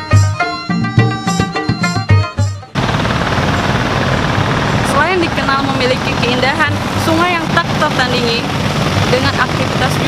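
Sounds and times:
small boat engines droning: 2.8 - 10.0.

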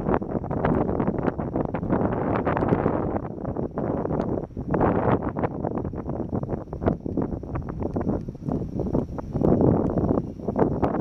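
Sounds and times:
wind buffeting microphone: 0.0 - 11.0
small crackles: 6.0 - 10.2.

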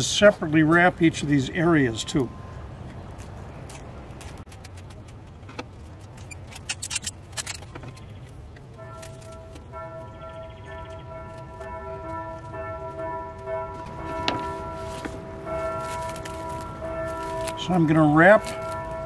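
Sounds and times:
bell-like tones ringing: 8.8 - 19.0.

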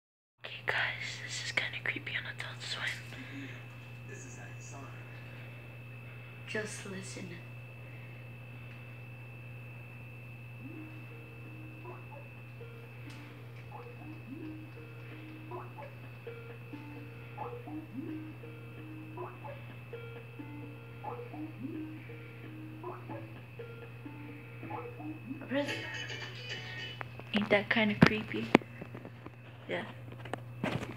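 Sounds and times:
low hum: 0.4 - 30.9
faint high steady tone: 2.6 - 27.0
plucked melody through tv speaker: 13.7 - 27.0.

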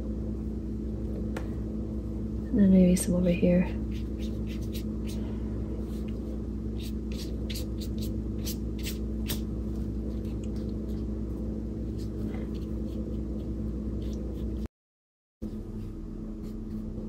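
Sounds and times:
low electrical hum: 0.0 - 14.7, 15.4 - 17.0
brush dabbing paint on paper: 3.8 - 5.2.

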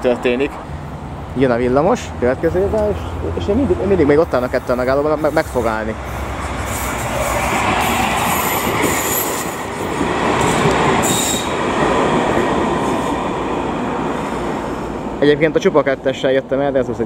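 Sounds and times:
tram wheels rumbling on rails: 0.0 - 17.0
high-pitched wheel squeals: 4.4 - 9.6, 11.0 - 11.6.

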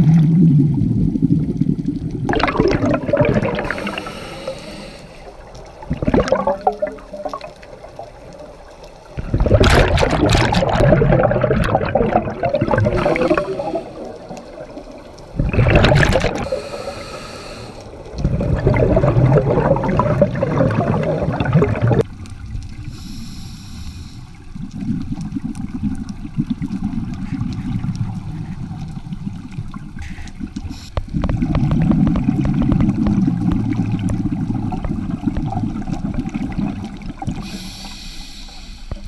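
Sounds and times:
low underwater rumble: 0.0 - 17.2, 17.8 - 38.2
exhaled bubbles rushing underwater: 0.0 - 23.2, 24.3 - 37.8
regulator inhalation hiss: 3.6 - 5.4, 16.5 - 18.0, 22.8 - 24.4, 30.0 - 31.1, 37.4 - 39.0.

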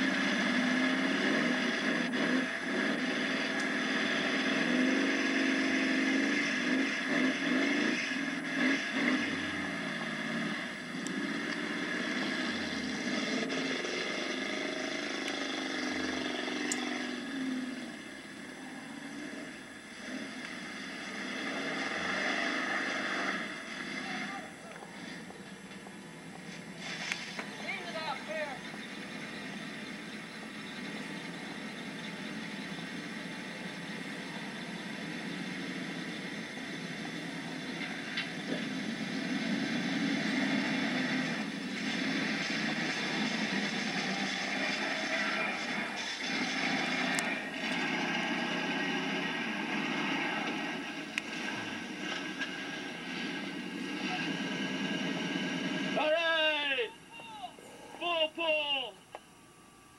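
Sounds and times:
vehicle engines revving: 0.0 - 59.1.

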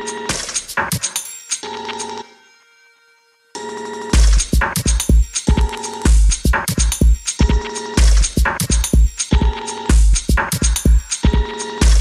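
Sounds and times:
ringing electronic tone: 3.6 - 4.2, 11.2 - 12.0
electronic dance music: 4.2 - 12.0.

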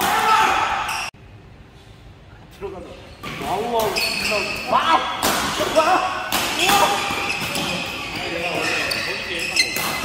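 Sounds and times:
players shouting: 0.0 - 1.1.

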